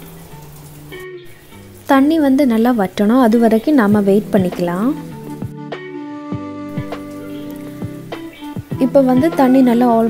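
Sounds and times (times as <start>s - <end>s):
water boiling in clay pot: 0.0s - 5.5s
soft background music: 0.0s - 10.0s.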